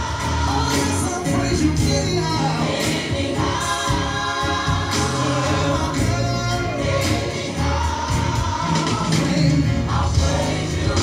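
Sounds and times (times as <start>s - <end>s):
choir singing gospel: 0.0s - 11.0s
instrumental backing with bass: 0.0s - 11.0s.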